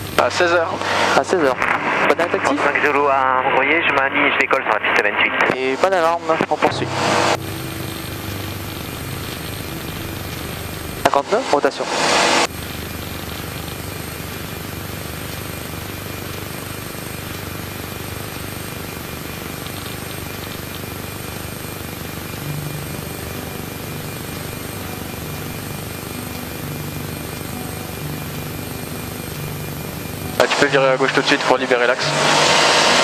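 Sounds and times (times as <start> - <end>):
aircraft engine and propeller: 0.0 - 33.0.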